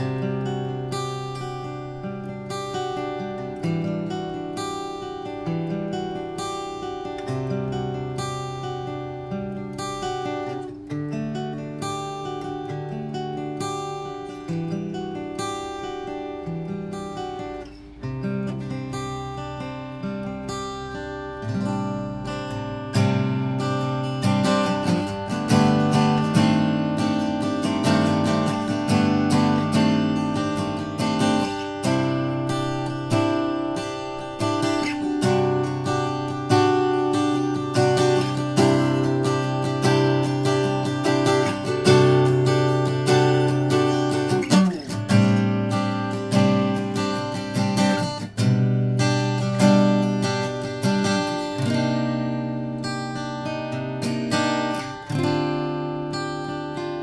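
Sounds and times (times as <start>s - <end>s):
acoustic guitar playing melody: 0.0s - 57.0s.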